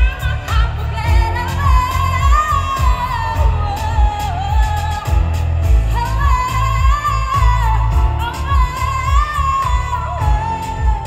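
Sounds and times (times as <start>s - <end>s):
live pop band with heavy beat: 0.0s - 11.0s
woman singing into a microphone: 0.0s - 11.0s.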